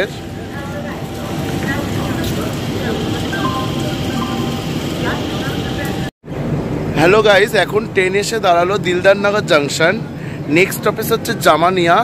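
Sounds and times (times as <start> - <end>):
faint voices: 0.0 - 6.1
rumble and noise: 0.0 - 11.3.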